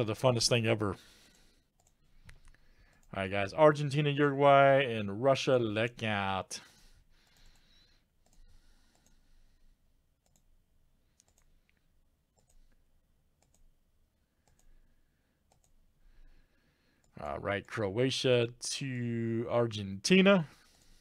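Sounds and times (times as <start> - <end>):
computer mouse clicks: 1.3 - 3.2, 7.2 - 9.2, 10.2 - 10.5, 11.1 - 12.8, 13.4 - 13.7, 14.4 - 14.8, 15.5 - 15.8.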